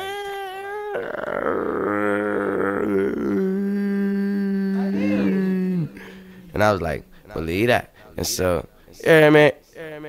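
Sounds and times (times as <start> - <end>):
man making drawn-out vocal sounds: 0.0 - 7.2.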